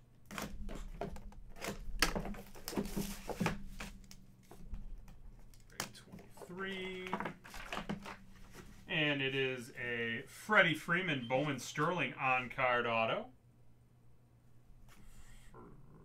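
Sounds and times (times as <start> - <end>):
cardboard box handled: 0.6 - 5.0
cellophane crinkling and tearing: 6.9 - 8.7.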